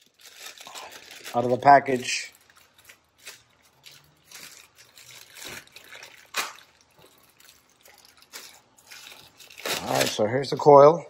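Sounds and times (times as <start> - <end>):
packaging rustling: 0.0 - 10.6.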